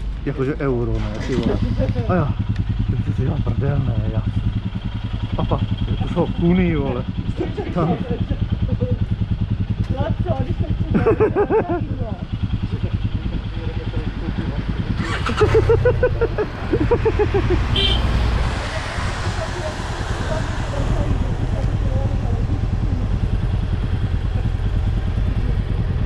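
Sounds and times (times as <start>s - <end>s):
motorcycle engine idling: 0.0s - 26.0s.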